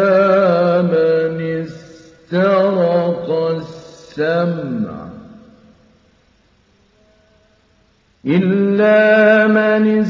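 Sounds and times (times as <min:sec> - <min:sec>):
man chanting melodically: 0:00.0 - 0:05.7, 0:08.2 - 0:10.0.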